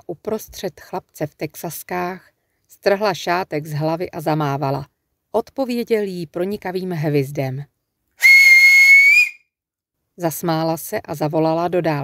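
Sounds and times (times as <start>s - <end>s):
person whistling a piercing note: 8.2s - 9.4s.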